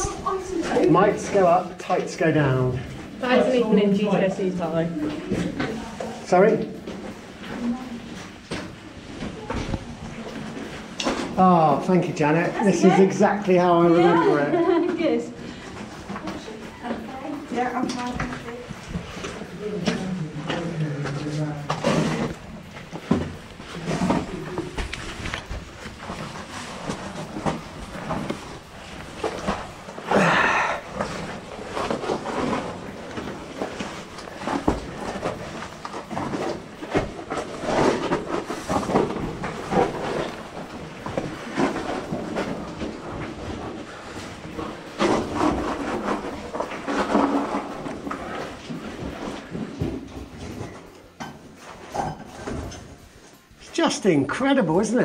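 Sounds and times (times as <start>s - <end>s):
knocks and scrapes: 15.8s - 30.1s, 30.9s - 53.4s
indistinct voices: 29.5s - 33.2s.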